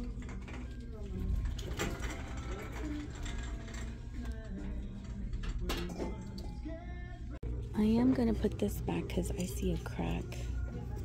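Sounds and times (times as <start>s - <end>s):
distant voices: 0.0s - 11.0s
faint music: 0.0s - 11.0s.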